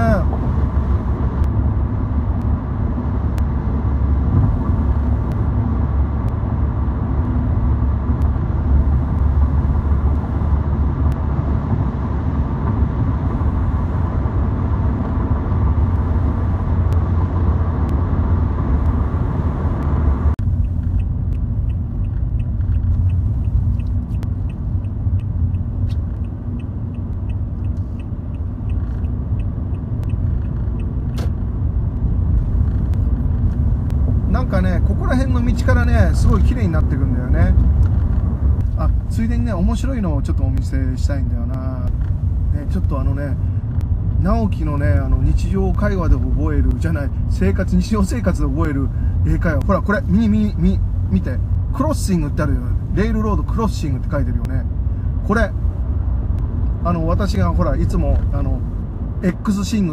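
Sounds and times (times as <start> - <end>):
car road noise rumble: 0.0 - 59.9
faint regular ticking: 20.3 - 34.5.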